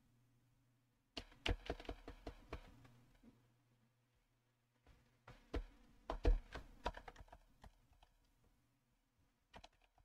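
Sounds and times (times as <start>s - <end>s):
computer keyboard keystrokes: 9.5s - 10.0s.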